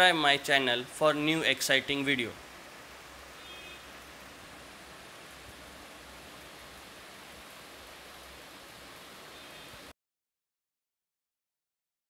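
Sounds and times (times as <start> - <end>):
faint steady hiss: 0.0 - 9.9.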